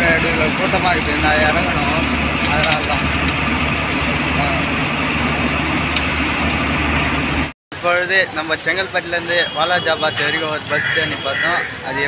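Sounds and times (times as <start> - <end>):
man speaking: 0.0 - 3.1, 4.3 - 4.8, 7.8 - 12.0
bus engine running: 0.0 - 9.2
road noise: 0.0 - 12.0.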